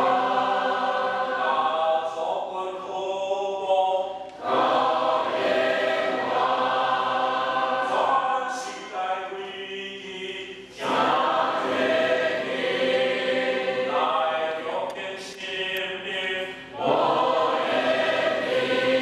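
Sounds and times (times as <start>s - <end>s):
mixed choir singing a hymn: 0.0s - 19.0s.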